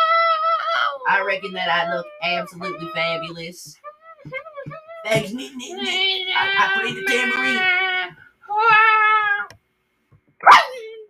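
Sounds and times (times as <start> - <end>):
loud cry falling in pitch: 5.1 - 9.5.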